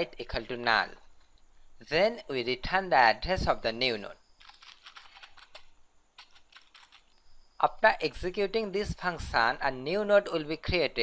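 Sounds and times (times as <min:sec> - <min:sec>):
typing on computer keyboard: 0:04.4 - 0:07.1.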